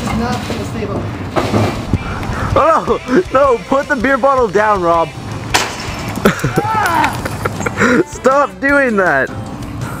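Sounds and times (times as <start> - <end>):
people laughing: 6.1 - 8.2.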